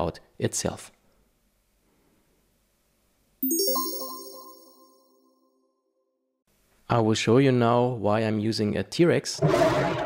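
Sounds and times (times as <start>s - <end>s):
rising bell-like chime: 3.4s - 5.4s.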